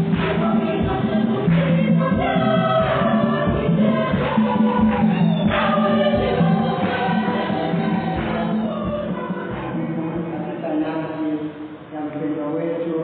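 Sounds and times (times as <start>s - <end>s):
choir singing a hymn: 0.0s - 10.6s.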